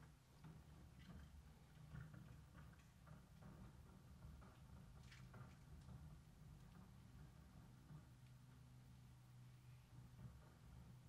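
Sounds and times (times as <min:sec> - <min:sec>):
faint irregular ticks: 0:00.0 - 0:11.0.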